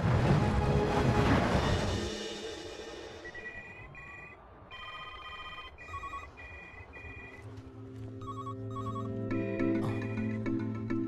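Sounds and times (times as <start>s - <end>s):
background music: 0.0s - 11.0s
electronic telephones ringing: 3.3s - 7.4s, 8.2s - 10.6s.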